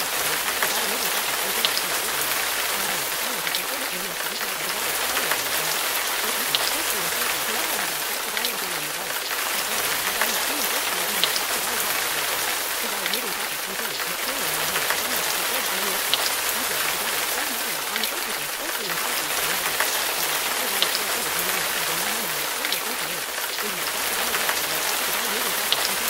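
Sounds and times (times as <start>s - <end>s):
murmur of spoken voices: 0.0s - 26.0s
steady rain: 0.0s - 26.0s.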